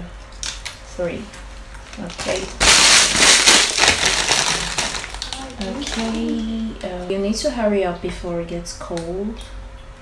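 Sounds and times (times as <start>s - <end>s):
plastic bag crinkling: 1.5s - 7.0s.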